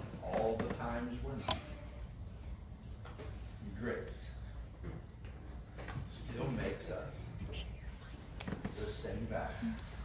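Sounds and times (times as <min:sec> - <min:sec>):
steady low hum: 0:00.0 - 0:10.0
man whispering: 0:06.8 - 0:10.0.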